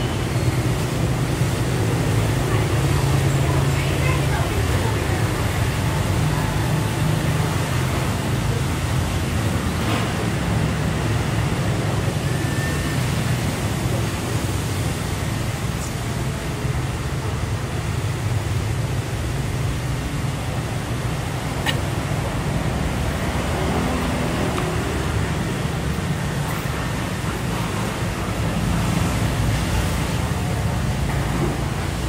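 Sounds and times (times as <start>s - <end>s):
street traffic rumble: 0.0s - 32.0s.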